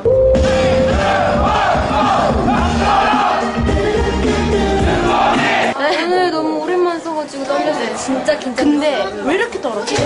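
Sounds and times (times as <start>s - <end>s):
pop music with bass beat: 0.0s - 5.8s
crowd shouting a cheer: 0.9s - 3.5s, 4.8s - 5.8s.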